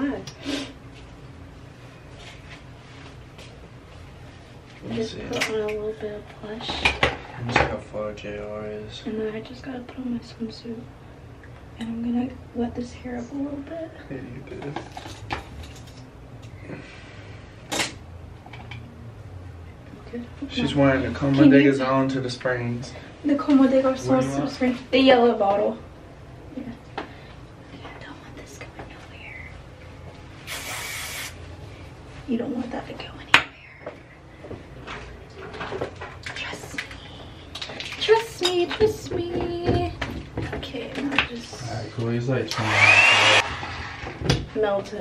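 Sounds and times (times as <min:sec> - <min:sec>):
low steady hum: 0:00.0 - 0:30.5
aerosol spray hiss: 0:30.5 - 0:31.4.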